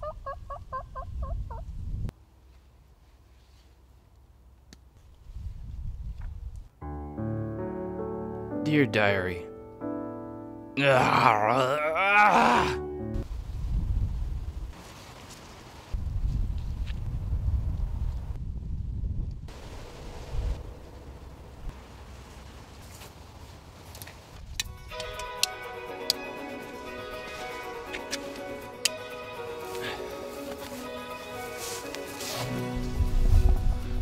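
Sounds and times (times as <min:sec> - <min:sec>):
wind rumble on microphone: 0:00.0 - 0:02.1, 0:05.1 - 0:06.8, 0:13.2 - 0:14.8, 0:15.9 - 0:21.8, 0:32.8 - 0:34.0
piano music: 0:06.8 - 0:11.6, 0:12.6 - 0:13.2, 0:24.7 - 0:34.0
man laughing: 0:10.8 - 0:12.8.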